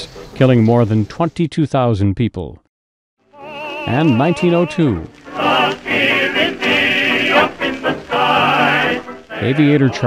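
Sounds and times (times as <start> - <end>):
choir singing sustained notes: 3.2 - 10.0.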